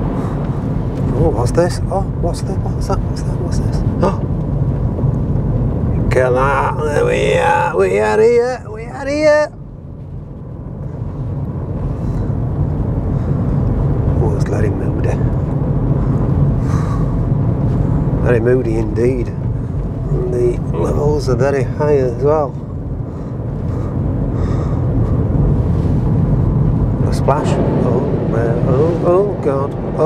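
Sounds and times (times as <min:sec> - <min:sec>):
car engine rumble: 0:00.0 - 0:30.0
tyres on road: 0:00.0 - 0:30.0.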